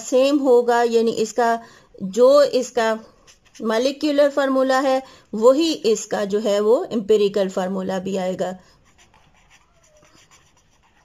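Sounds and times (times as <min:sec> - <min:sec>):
pen scratching on paper: 0:02.6 - 0:04.3, 0:08.7 - 0:11.0.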